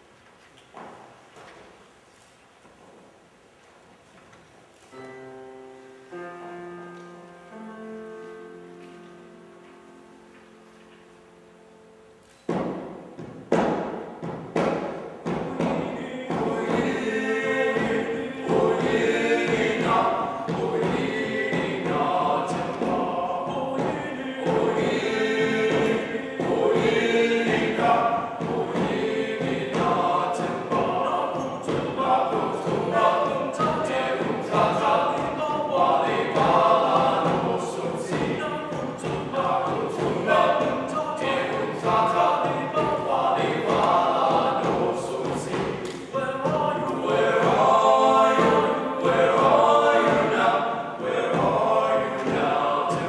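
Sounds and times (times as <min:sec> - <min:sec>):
choir singing in parts: 0:06.1 - 0:53.0.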